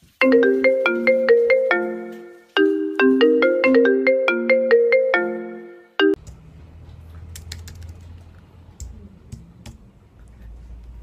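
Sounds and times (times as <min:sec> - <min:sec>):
xylophone notes: 0:00.2 - 0:06.2.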